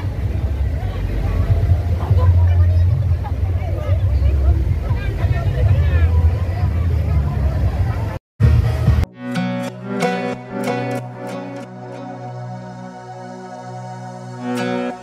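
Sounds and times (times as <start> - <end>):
deep bass rumble from sound system: 0.0 - 9.1
crowd talking and calling: 0.0 - 15.0.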